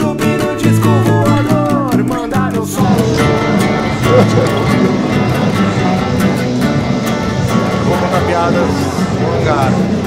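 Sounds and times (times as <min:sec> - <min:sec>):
drums: 0:00.0 - 0:10.0
guitar: 0:00.0 - 0:10.0
loud live band: 0:00.0 - 0:10.0.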